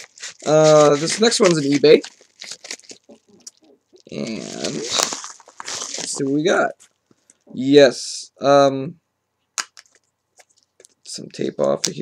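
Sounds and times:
packing tape pulled off: 0.0 - 3.2, 4.1 - 6.3.

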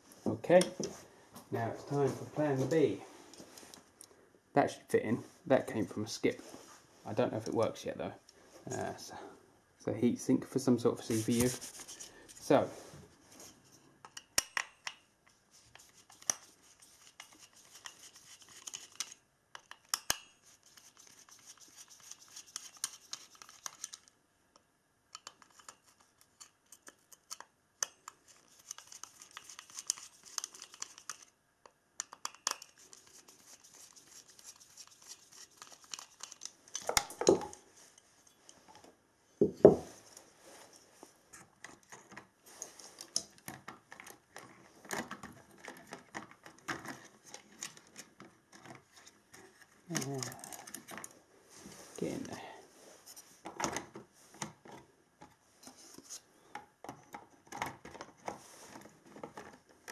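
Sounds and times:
scraping and rubbing with clicks: 11.0 - 12.6, 13.3 - 24.2, 25.2 - 31.4, 32.0 - 38.9.

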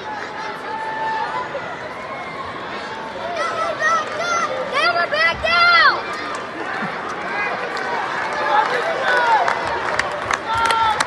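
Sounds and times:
arena crowd hubbub: 0.0 - 11.0
crowd shouts: 0.0 - 11.0.

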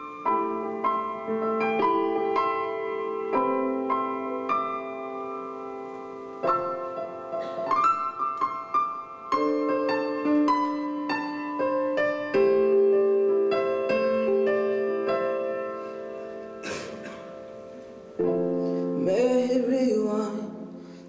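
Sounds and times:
slow piano piece on keyboard: 0.0 - 21.0.

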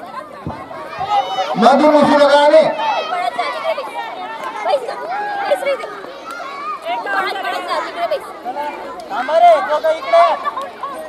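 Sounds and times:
young children chattering: 0.0 - 11.0.

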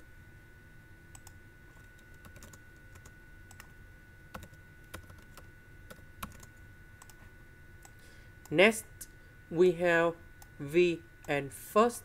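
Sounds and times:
typing on computer keyboard: 1.9 - 3.7, 4.3 - 7.2.

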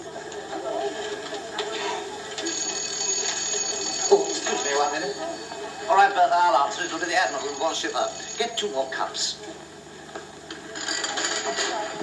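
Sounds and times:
electric doorbell ringing: 2.4 - 5.5, 7.1 - 8.7.

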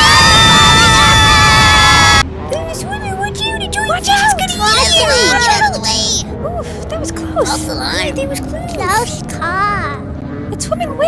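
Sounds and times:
high-pitched voices screaming: 0.0 - 2.2
quiet wavering voices: 2.5 - 11.0.

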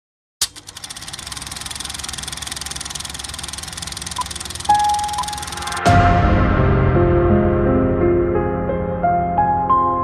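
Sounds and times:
film projector clattering: 0.4 - 5.8.

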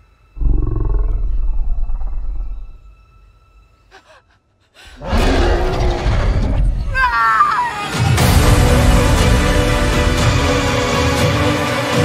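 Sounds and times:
loud low dinosaur roar: 0.4 - 2.8, 5.0 - 6.6.

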